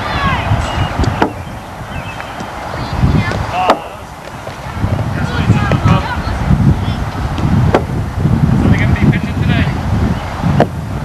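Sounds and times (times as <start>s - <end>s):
distant high voices calling: 0.0s - 8.7s
bat striking baseball: 1.0s - 1.5s.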